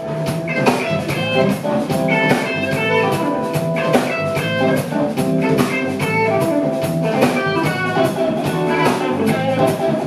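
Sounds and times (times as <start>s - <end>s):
bass guitar: 0.0s - 10.0s
drums and cymbals: 0.0s - 10.0s
electric guitar: 0.0s - 10.0s.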